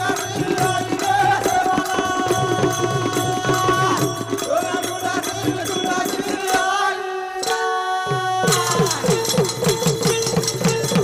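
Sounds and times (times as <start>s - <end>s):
hand drum beat: 0.0s - 6.5s, 8.1s - 11.0s.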